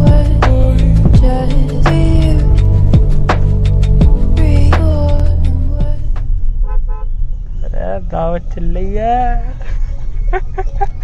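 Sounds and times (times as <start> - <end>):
low road rumble: 0.0 - 11.0
vehicle horn toots: 6.6 - 7.6.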